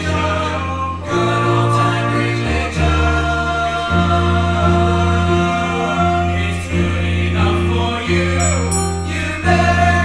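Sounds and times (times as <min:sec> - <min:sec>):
choir of young voices singing: 0:00.0 - 0:10.0
low accompanying notes: 0:00.0 - 0:10.0.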